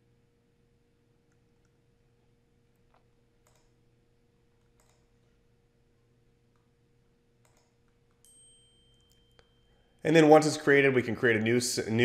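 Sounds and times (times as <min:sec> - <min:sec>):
faint high steady whine: 0:00.0 - 0:12.0
computer mouse click: 0:02.9 - 0:03.8, 0:04.6 - 0:05.2, 0:07.4 - 0:08.2.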